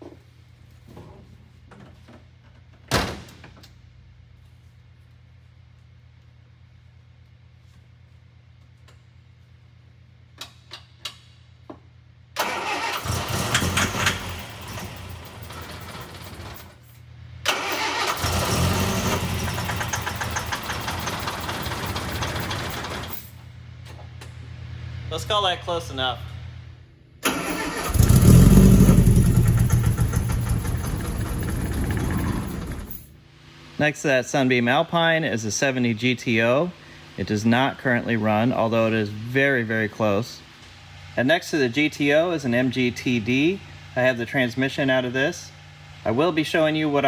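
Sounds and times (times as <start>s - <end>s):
car engine cranking and starting: 12.4s - 16.7s, 17.5s - 23.2s, 27.2s - 33.1s.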